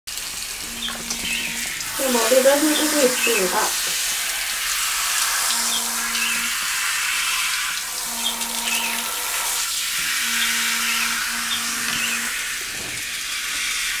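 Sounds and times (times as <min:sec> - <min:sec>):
water hissing while washing hair: 0:00.1 - 0:14.0
low hum: 0:05.4 - 0:06.6.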